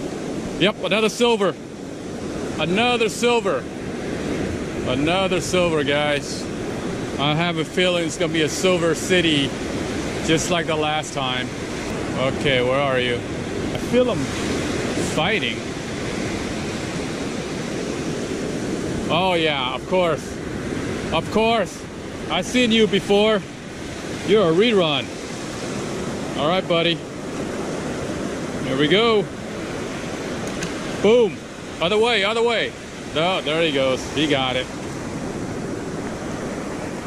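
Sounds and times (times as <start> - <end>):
ocean surf breaking: 0.0 - 37.0.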